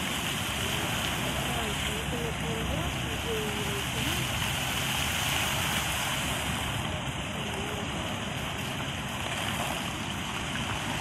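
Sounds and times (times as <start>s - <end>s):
fountain jets splashing into pool: 0.0s - 11.0s.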